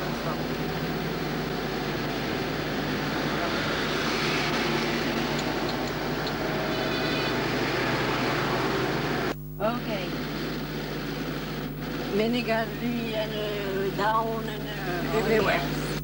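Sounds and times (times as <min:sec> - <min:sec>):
car driving in traffic: 0:00.0 - 0:12.3
low electrical hum: 0:00.0 - 0:16.0.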